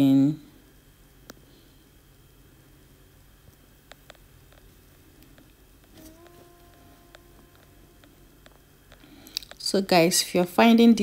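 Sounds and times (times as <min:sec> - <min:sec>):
low steady hum: 0:00.0 - 0:11.0
faint held tone: 0:05.9 - 0:09.3.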